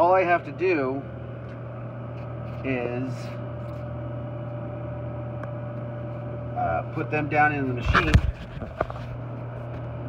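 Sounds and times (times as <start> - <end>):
vending machine low hum: 0.0 - 10.0.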